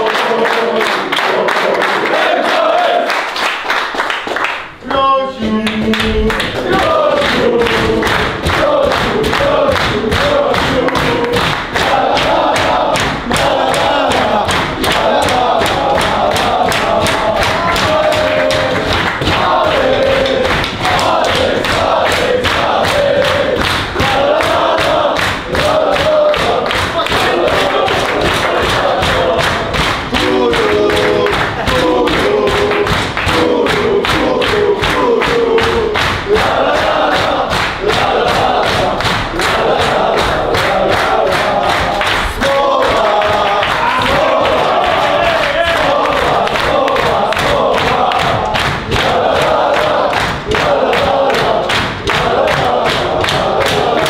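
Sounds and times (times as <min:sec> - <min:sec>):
men singing and chanting: 0:00.0 - 0:03.1, 0:04.7 - 0:54.0
rhythmic hand-clapping: 0:00.0 - 0:54.0.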